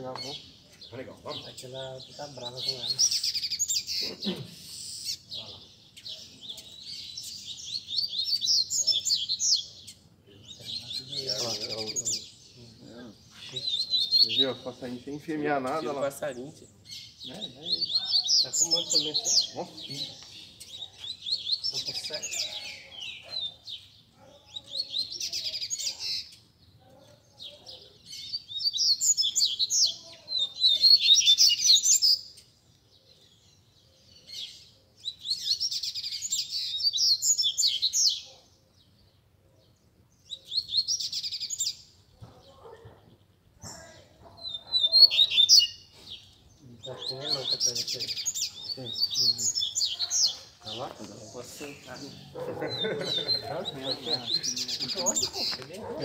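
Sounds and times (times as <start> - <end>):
birds twittering song: 0.0 - 56.0.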